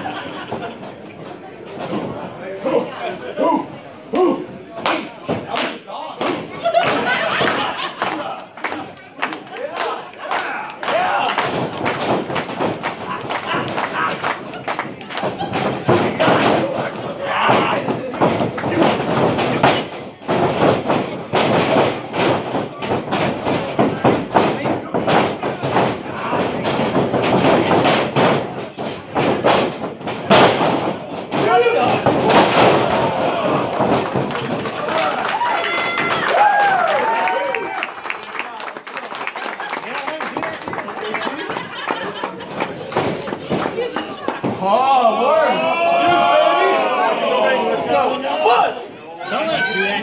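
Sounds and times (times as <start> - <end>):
crowd shouting and chatter: 0.0 - 38.9, 39.8 - 50.0
wrestlers slamming onto mat: 10.9 - 37.0.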